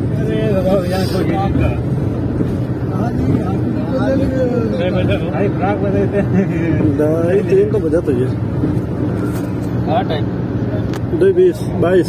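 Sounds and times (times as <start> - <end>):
car engine and road noise: 0.0 - 12.0.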